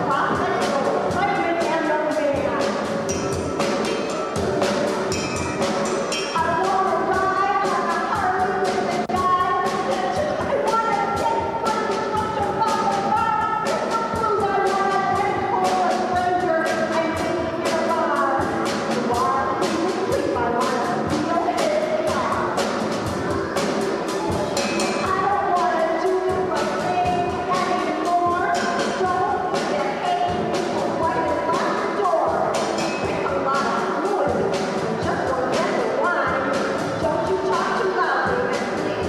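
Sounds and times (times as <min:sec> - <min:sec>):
drum kit with cymbals: 0:00.0 - 0:39.0
woman singing: 0:06.4 - 0:22.5, 0:25.0 - 0:34.4, 0:35.0 - 0:39.0.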